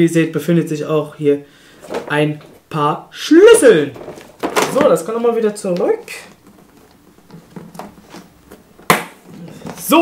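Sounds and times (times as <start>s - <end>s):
faint rustling: 1.5s - 2.8s, 3.6s - 10.0s.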